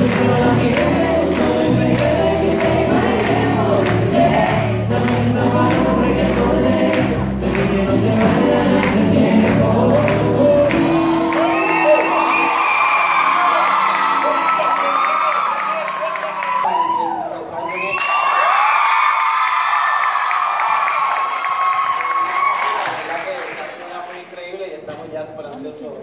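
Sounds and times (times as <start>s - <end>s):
band music: 0.0s - 12.8s
audience screaming and cheering: 10.0s - 23.1s.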